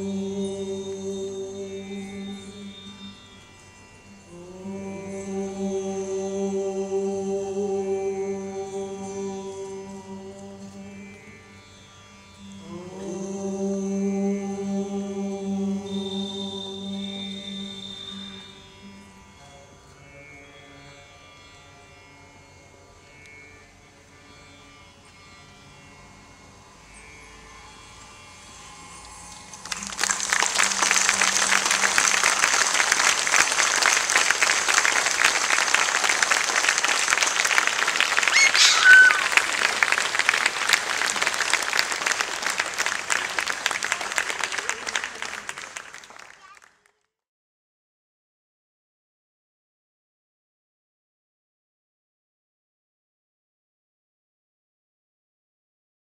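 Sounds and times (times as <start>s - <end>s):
held music notes and drone: 0.0s - 21.8s
audience applause: 29.6s - 46.8s.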